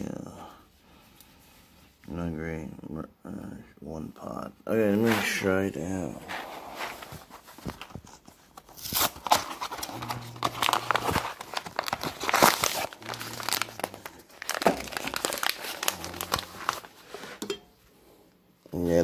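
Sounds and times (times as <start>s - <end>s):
packaging crinkling and tearing: 7.0s - 17.4s.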